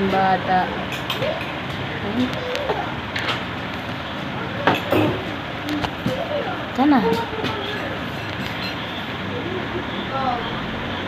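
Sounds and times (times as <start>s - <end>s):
steady rushing background noise: 0.0s - 11.0s.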